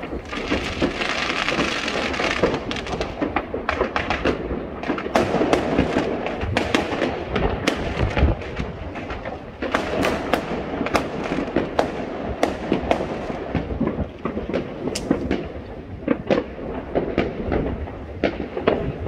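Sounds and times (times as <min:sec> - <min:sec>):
fireworks and firecrackers bangs: 0:00.0 - 0:19.0.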